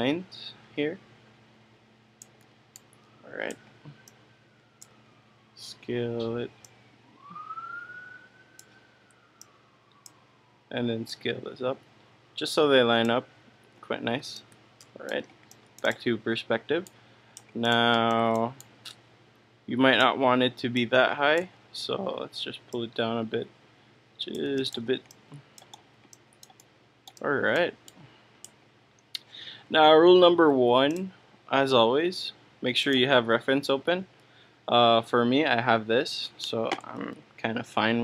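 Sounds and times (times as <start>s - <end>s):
faint siren wail: 2.8s - 13.6s
mouse clicks: 24.3s - 28.6s.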